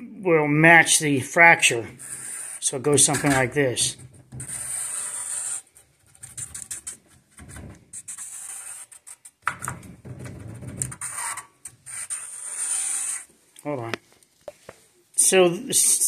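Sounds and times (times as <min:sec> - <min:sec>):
marker scraping on steel plate: 0:01.6 - 0:13.3.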